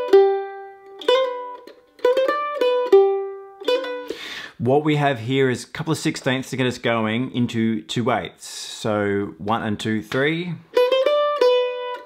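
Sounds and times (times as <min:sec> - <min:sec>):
mandolin playing jig phrase: 0:00.0 - 0:07.6, 0:09.4 - 0:12.0.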